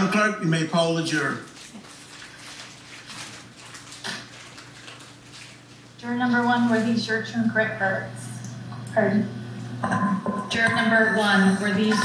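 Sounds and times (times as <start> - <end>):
faint rustling and room noise: 0.0 - 9.1
steady low hum: 5.2 - 12.0.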